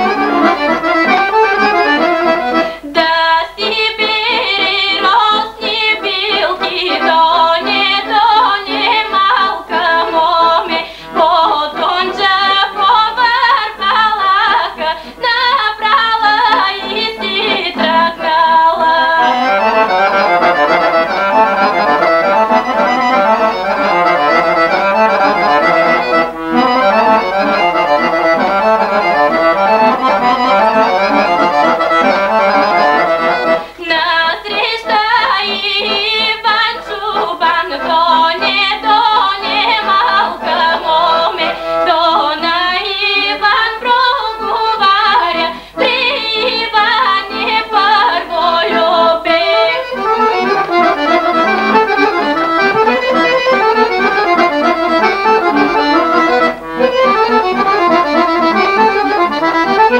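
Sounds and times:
folk instrumental accompaniment: 0.0 - 59.9
woman singing ornamented melody: 2.8 - 20.6, 33.8 - 52.0.

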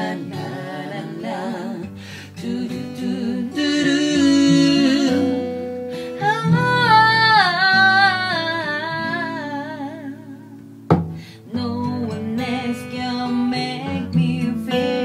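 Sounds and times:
woman singing wordless melody: 0.0 - 10.7, 11.4 - 15.0
strummed acoustic guitar: 0.0 - 15.0
sharp tap: 10.9 - 11.2.

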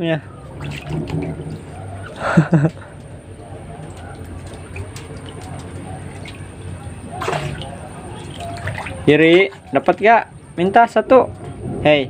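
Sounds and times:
water sloshing in plastic tub: 0.0 - 11.7.

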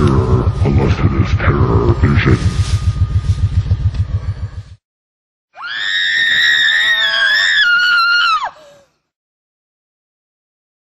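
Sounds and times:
low pulsing rumble: 0.0 - 4.8
long human scream: 5.6 - 8.9.

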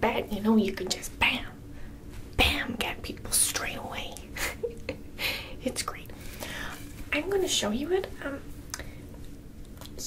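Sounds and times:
woman whispering: 5.6 - 6.2.

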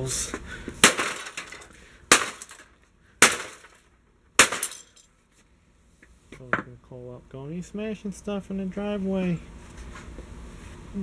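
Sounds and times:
sledgehammer crashing into computer case: 0.8 - 3.8, 4.4 - 4.9
metal and debris clattering: 0.8 - 5.0.

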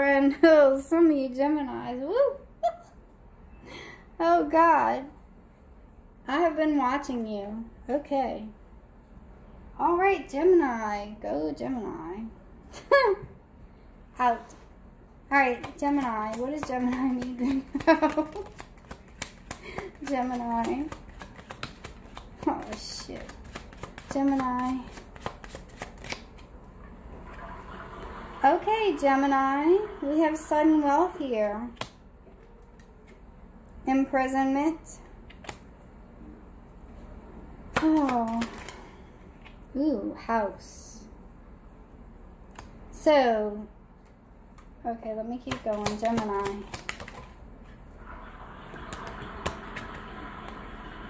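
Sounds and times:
cards being shuffled: 15.6 - 26.6, 35.3 - 35.6, 37.7 - 39.6, 45.5 - 47.4, 48.7 - 50.6.

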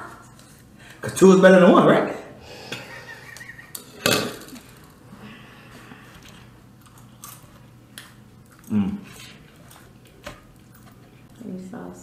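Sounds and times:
breathy wheezing laughter: 2.5 - 4.0.

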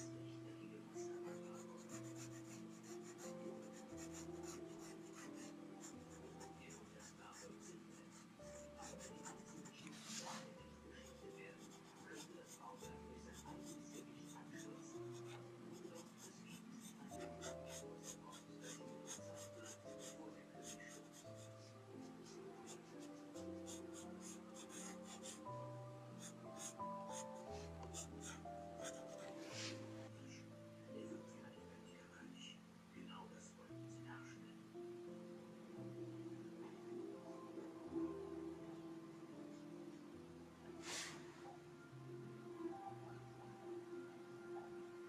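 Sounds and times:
soft background music: 0.0 - 45.0
pencil scratching on paper: 1.3 - 25.6, 26.2 - 29.8.

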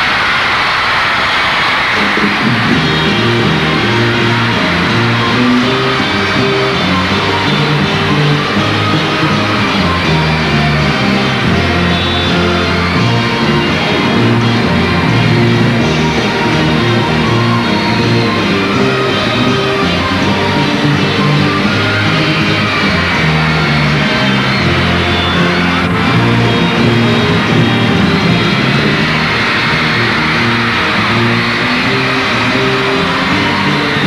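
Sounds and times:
crowd applauding and cheering: 0.0 - 34.0
orchestra playing: 2.5 - 34.0.

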